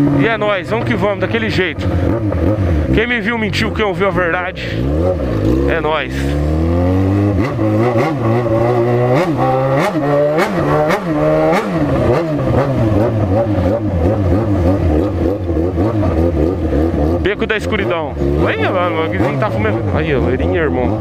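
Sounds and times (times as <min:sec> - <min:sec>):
motorcycle engine throttle blips: 0:00.0 - 0:21.0.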